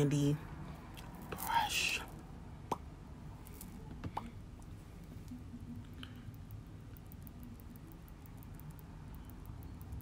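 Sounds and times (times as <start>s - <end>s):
woman's soft whisper: 1.3s - 2.2s.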